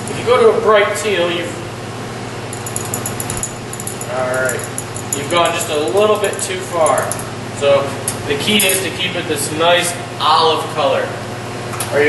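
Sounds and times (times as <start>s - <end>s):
steady low hum: 0.0s - 12.0s
rod ticking against glass: 2.6s - 7.2s.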